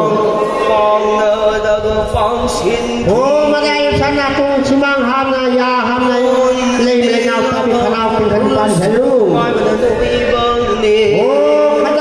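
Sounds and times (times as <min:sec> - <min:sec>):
chant-like ritual singing: 0:00.0 - 0:12.0.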